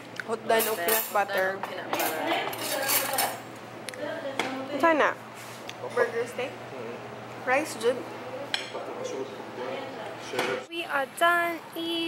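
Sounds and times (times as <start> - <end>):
cutlery and crockery clinking: 0.5 - 3.5.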